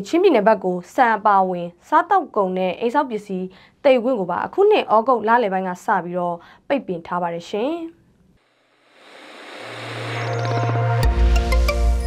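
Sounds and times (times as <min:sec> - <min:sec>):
rising synthetic whoosh: 0:08.8 - 0:12.0.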